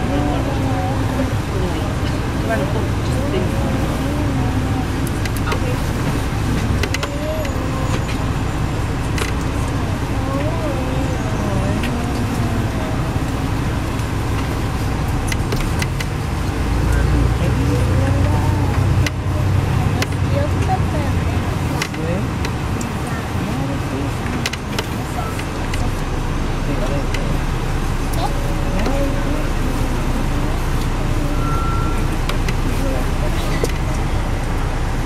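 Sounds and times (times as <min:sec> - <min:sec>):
bus engine drone: 0:00.0 - 0:35.0
passenger chatter: 0:00.0 - 0:35.0
road noise: 0:00.0 - 0:35.0.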